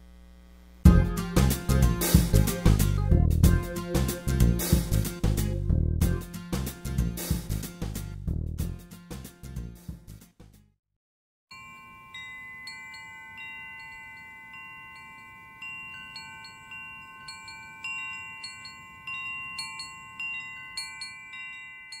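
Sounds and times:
metal wind chimes ringing: 0:11.5 - 0:22.0.

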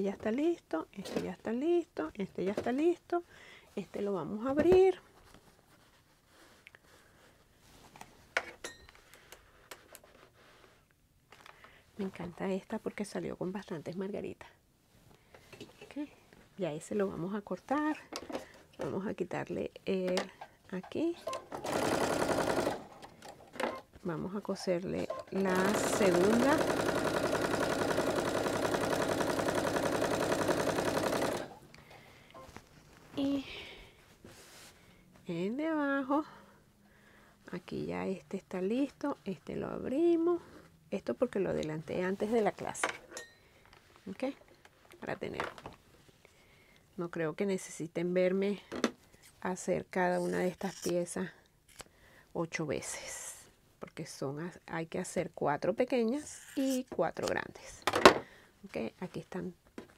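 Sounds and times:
fabric rustling: 0:05.0 - 0:08.4, 0:32.0 - 0:35.4
sewing machine stitching: 0:21.2 - 0:23.8, 0:25.0 - 0:31.6.

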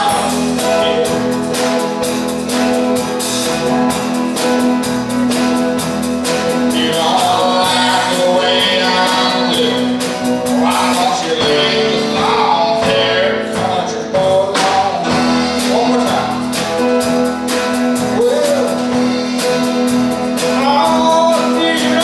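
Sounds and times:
acoustic guitar: 0:00.0 - 0:22.0
country band playing live: 0:00.0 - 0:22.0.

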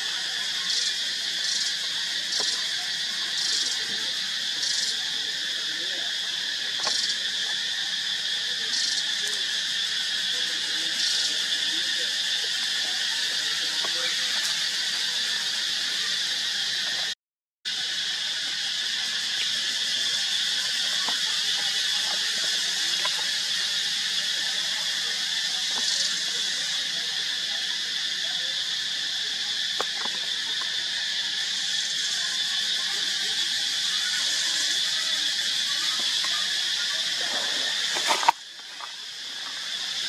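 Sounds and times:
high-pitched insect chorus: 0:00.0 - 0:40.0.

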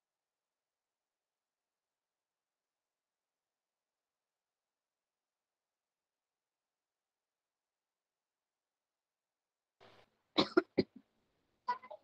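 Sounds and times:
person coughing: 0:10.4 - 0:11.0.

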